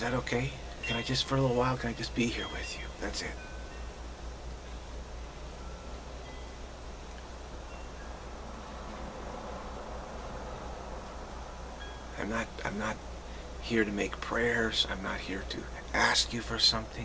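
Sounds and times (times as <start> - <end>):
faint high chime-like tones: 0.0 - 4.9, 5.5 - 6.8, 7.6 - 9.6, 11.7 - 12.6
low hum: 0.0 - 17.0.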